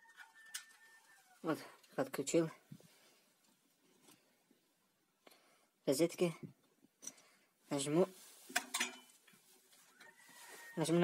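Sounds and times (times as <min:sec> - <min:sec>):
handling sounds: 0:08.2 - 0:10.8.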